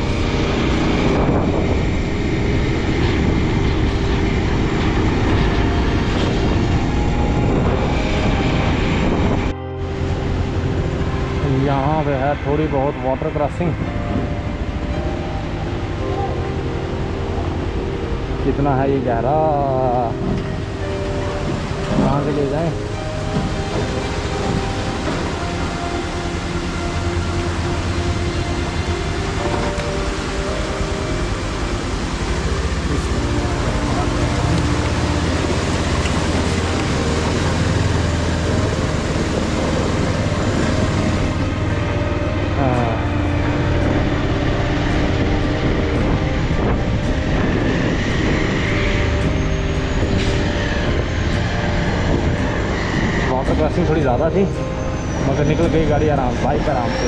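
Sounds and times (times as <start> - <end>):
tyres splashing through water: 10.2 - 57.0.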